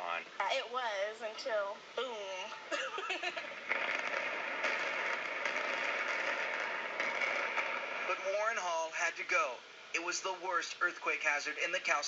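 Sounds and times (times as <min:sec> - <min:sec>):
demolition charges exploding: 0:03.5 - 0:08.7
rumble of collapsing building: 0:03.5 - 0:08.7.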